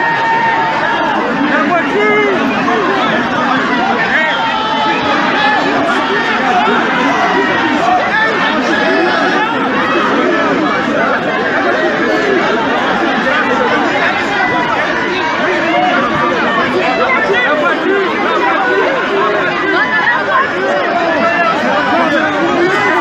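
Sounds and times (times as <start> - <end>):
dense crowd babble: 0.0 - 23.0.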